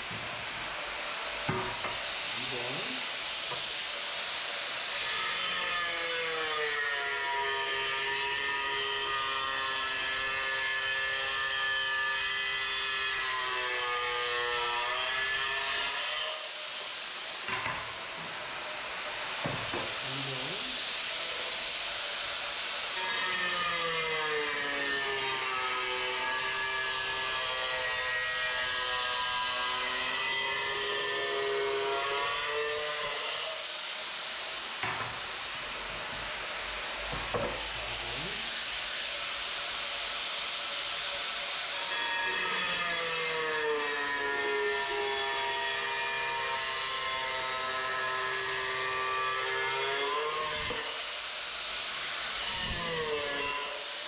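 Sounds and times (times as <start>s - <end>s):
angle grinder cutting tile: 0.0s - 54.0s.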